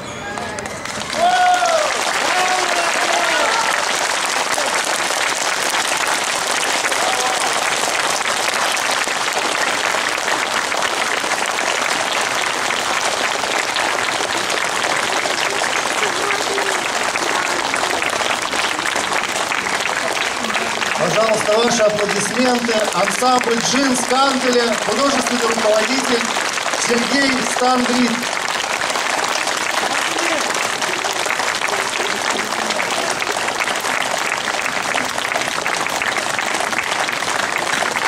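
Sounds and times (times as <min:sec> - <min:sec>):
audience applauding: 0:00.0 - 0:38.0
voices over clapping: 0:00.0 - 0:38.0.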